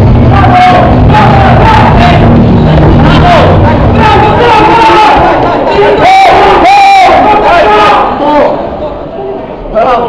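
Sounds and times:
spectators shouting: 0:00.0 - 0:08.7
long held yells: 0:00.2 - 0:02.3, 0:03.0 - 0:08.2.

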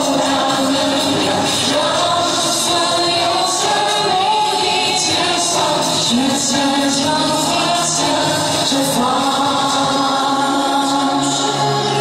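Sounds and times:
backing track with beat: 0:00.0 - 0:12.0
woman singing into microphone: 0:00.0 - 0:12.0.

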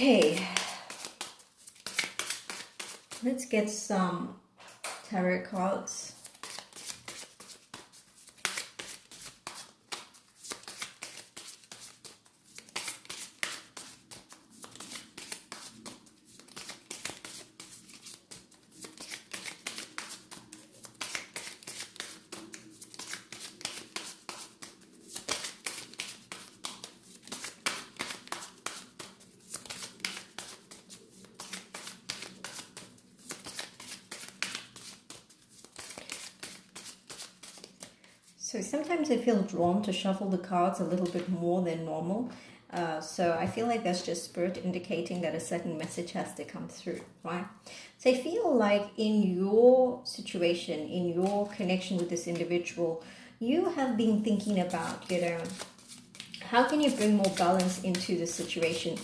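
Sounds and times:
cards being shuffled: 0:00.0 - 0:03.3, 0:06.2 - 0:38.2, 0:41.0 - 0:41.3, 0:54.4 - 0:59.0.

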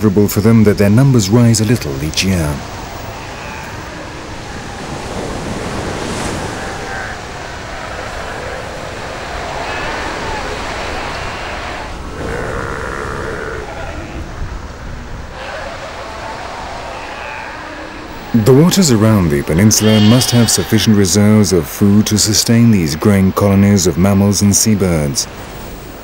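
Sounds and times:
sea lions calling: 0:00.0 - 0:25.6
surf washing on beach: 0:00.0 - 0:26.0.

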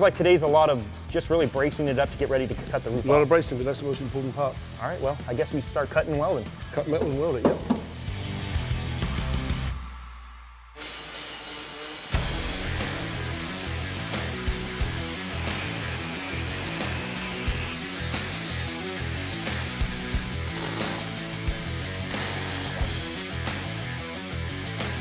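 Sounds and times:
background music with steady beat: 0:00.0 - 0:25.0
angle grinder cutting steel: 0:10.8 - 0:21.1
welder crackling: 0:11.5 - 0:21.1.

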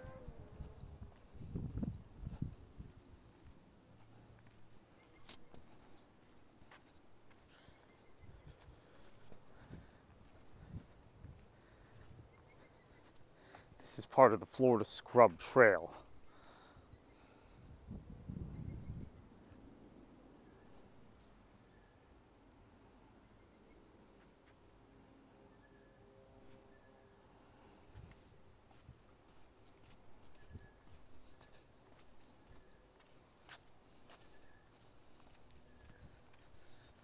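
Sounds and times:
crickets chirping: 0:00.0 - 0:37.0.

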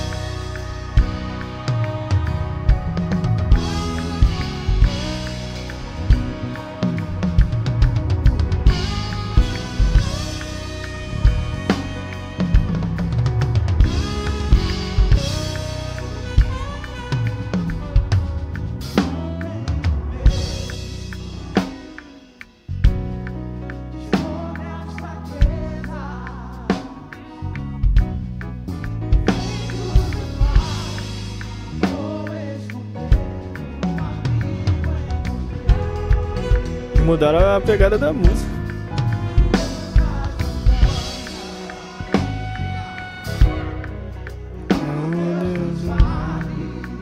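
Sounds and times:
drum kit hits: 0:00.0 - 0:23.4, 0:33.2 - 0:46.5
bass and keyboard notes: 0:00.0 - 0:47.0
live band playing: 0:00.0 - 0:47.0.

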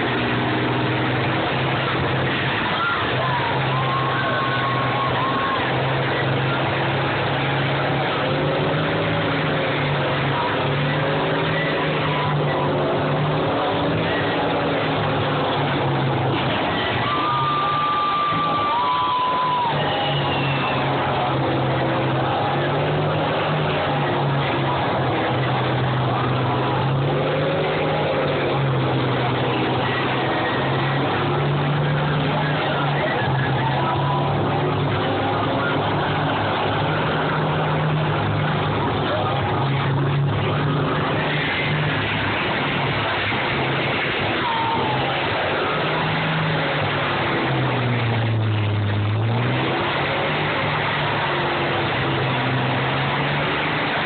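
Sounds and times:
diesel engines revving: 0:00.0 - 0:54.0.

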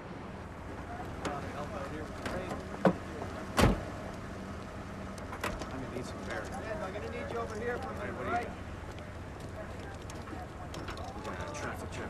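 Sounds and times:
car door thud: 0:02.8 - 0:03.9.

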